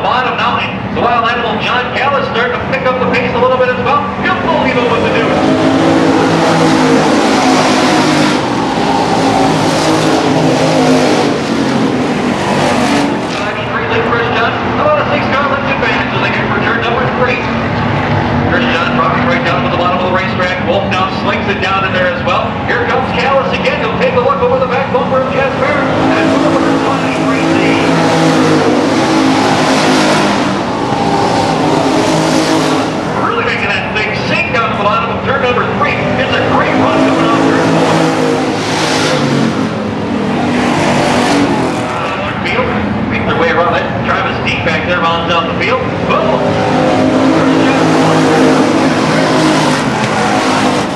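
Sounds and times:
stock car engines racing past: 0.0s - 50.9s.

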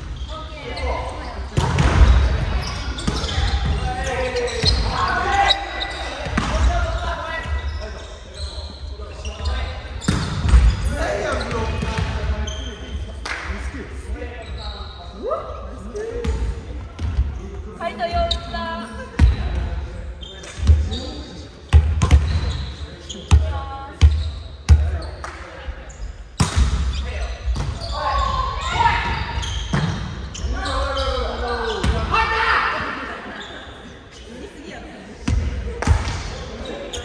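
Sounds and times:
players shouting calls: 30.3s - 33.2s.

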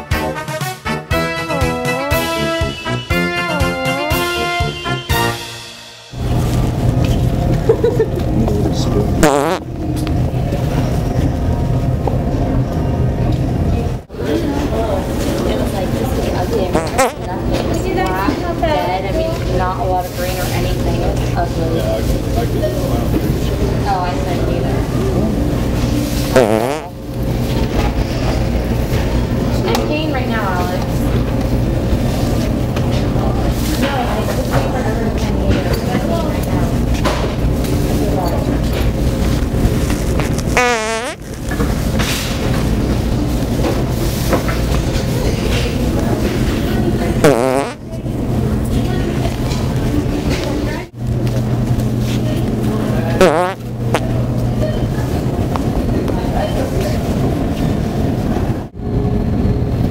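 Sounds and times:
low background hum: 6.1s - 59.9s
background chatter: 7.4s - 58.7s
fart noise toy: 9.2s - 9.7s, 16.7s - 17.3s, 26.3s - 27.0s, 40.2s - 41.2s, 47.2s - 47.8s, 53.2s - 53.6s.

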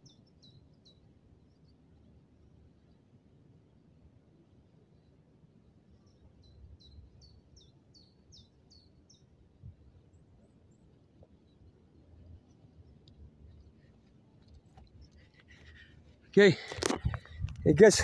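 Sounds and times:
bird chirping: 0.0s - 2.1s, 5.9s - 9.3s.

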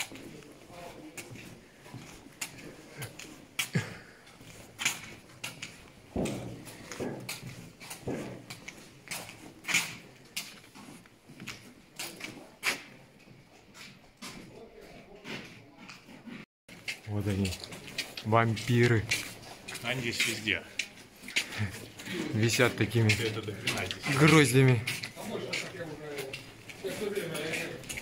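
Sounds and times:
footsteps on concrete: 0.0s - 28.0s
sharp scuffs and knocks: 4.4s - 13.0s.

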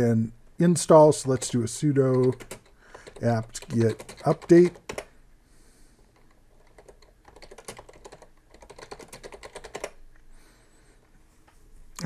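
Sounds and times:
typing on a computer keyboard: 1.2s - 5.1s, 6.1s - 10.0s.

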